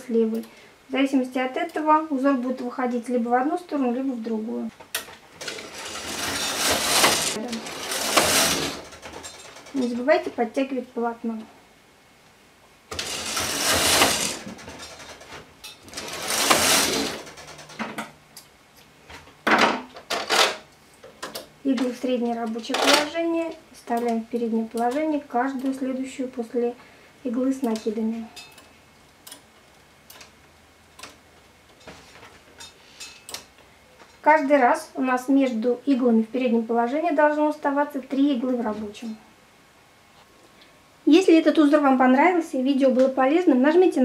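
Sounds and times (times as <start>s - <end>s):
knitting machine carriage whirring: 4.9s - 10.3s, 12.9s - 18.0s.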